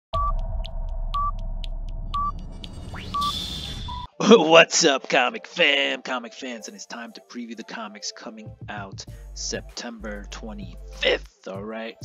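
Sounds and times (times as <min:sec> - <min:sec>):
short electronic beeps: 0:02.1 - 0:04.1.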